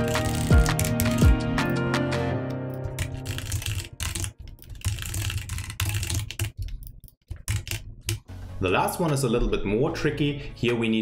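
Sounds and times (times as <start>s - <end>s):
typing on a keyboard: 0.0s - 1.4s, 2.7s - 8.2s.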